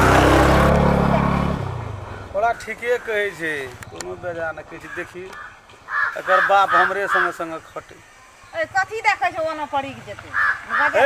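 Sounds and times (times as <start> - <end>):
motorcycle engine running: 0.0 - 2.4.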